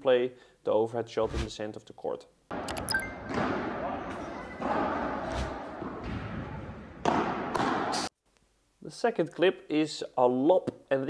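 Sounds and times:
ball hitting and bouncing indoors: 2.6 - 8.1.

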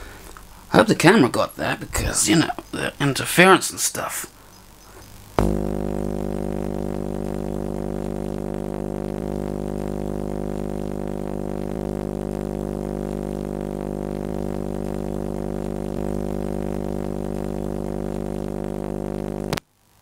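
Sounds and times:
tesla coil buzzing drone: 4.6 - 19.6.

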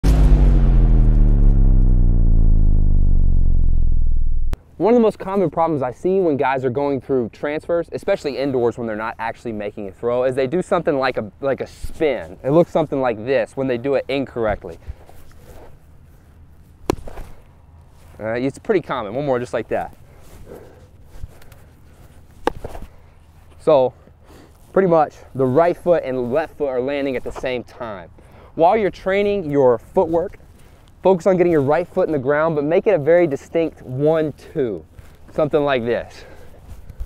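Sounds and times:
deep hit with rumbling tone: 0.0 - 4.6
baseball popping into mitt: 16.8 - 17.4, 22.4 - 22.9.

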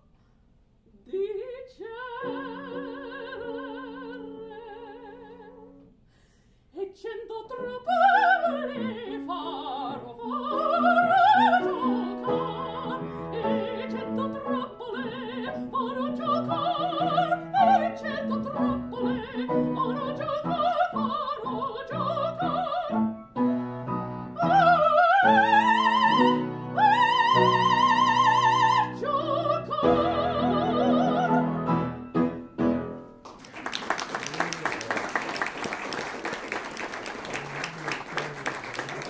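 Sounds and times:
woman singing operatic note: 6.8 - 23.0
grand piano accompaniment: 8.1 - 39.0.

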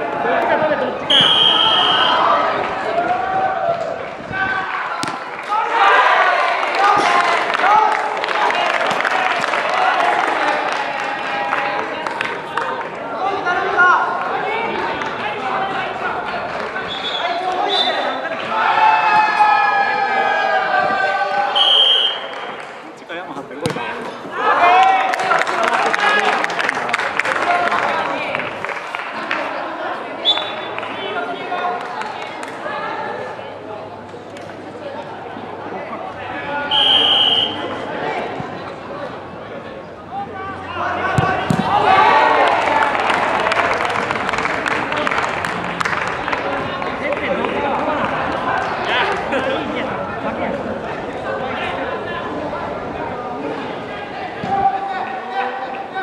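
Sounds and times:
spectators shouting: 0.0 - 22.6, 35.1 - 38.5, 40.0 - 50.2
crowd cheering: 0.0 - 56.0
referee's whistle blast: 1.1 - 2.2, 21.6 - 22.3, 36.7 - 37.7
ball kicked thud: 23.6 - 23.9, 41.1 - 41.7.

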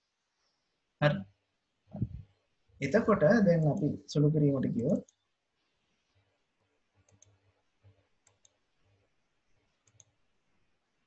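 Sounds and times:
faint computer mouse clicks: 7.0 - 9.0, 9.8 - 10.2.

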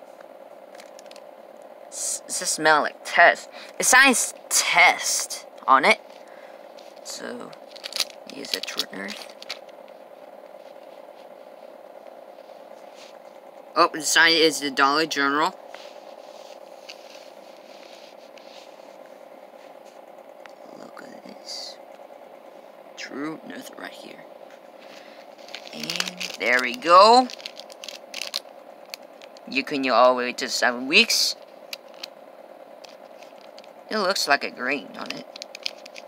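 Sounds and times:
low background hum: 0.0 - 36.0
package crackling while handled: 0.7 - 1.3, 6.7 - 11.0, 25.3 - 29.5, 31.4 - 33.8, 35.0 - 36.0
soft ticks and rustles: 32.8 - 33.8.

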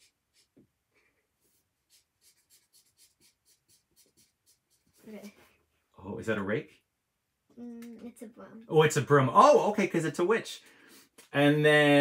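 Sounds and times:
marker scratching on paper: 0.0 - 0.6, 1.4 - 5.5.

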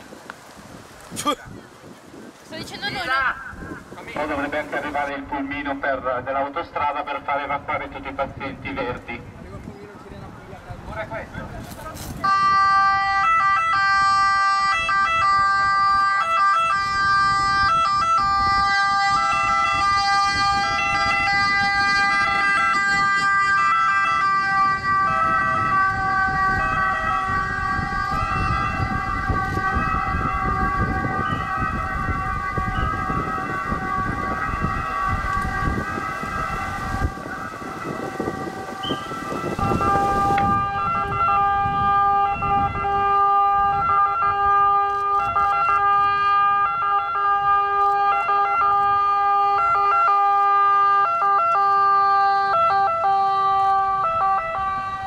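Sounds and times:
two-tone ambulance sirens: 2.9 - 11.2, 12.0 - 55.0.

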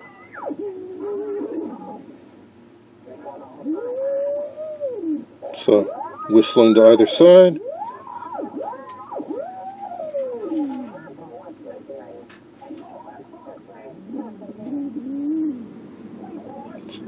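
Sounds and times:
faint radio station audio: 0.0 - 17.0.

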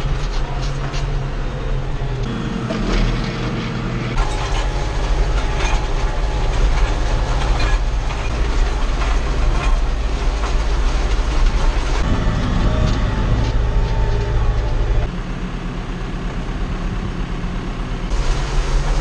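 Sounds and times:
tractor engine running: 0.0 - 19.0.

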